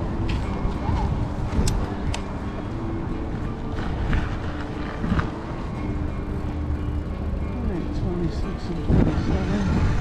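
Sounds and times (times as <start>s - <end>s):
wind rumble on microphone: 0.0s - 2.4s, 8.7s - 10.0s
bicycle tyres rolling on asphalt: 2.7s - 10.0s.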